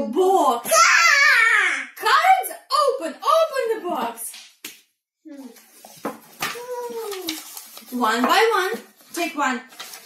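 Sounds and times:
toddler's excited voice: 0:00.6 - 0:02.0, 0:06.4 - 0:07.5
woman's voice: 0:02.0 - 0:04.3, 0:07.9 - 0:09.7.

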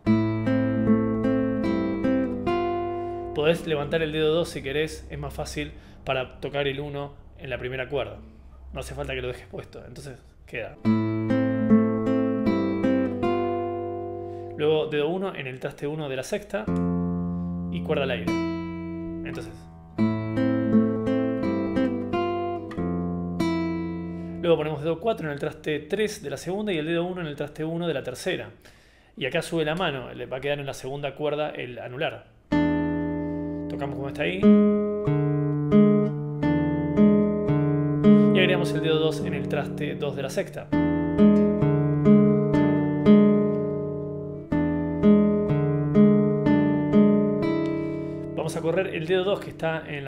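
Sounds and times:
classical guitar fingerpicking: 0:00.0 - 0:05.9, 0:10.8 - 0:14.6, 0:16.7 - 0:25.5, 0:32.5 - 0:50.0.

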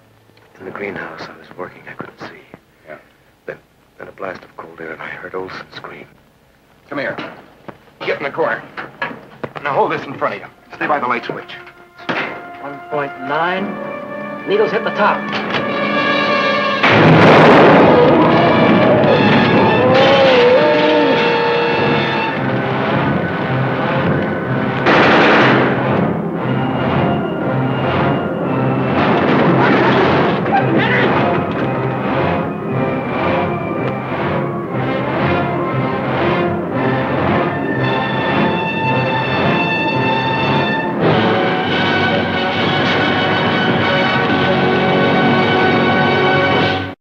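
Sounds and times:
dramatic orchestral music: 0:09.7 - 0:47.0
sharp hits: 0:15.4 - 0:45.8
loud noisy surges: 0:15.7 - 0:47.0.

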